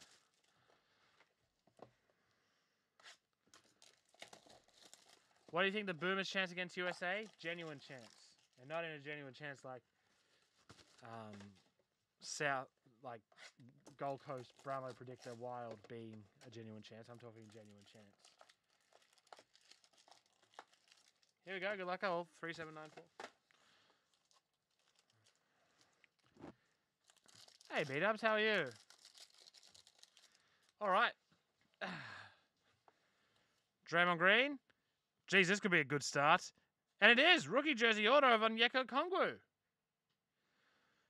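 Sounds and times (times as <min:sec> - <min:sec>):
foil wrappers crinkling: 0:03.5 - 0:05.7, 0:06.7 - 0:08.6, 0:14.0 - 0:21.5, 0:22.6 - 0:26.3, 0:27.0 - 0:30.8.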